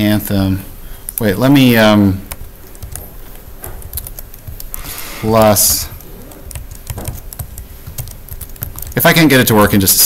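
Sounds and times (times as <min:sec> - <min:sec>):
computer keyboard typing: 0:02.2 - 0:09.7.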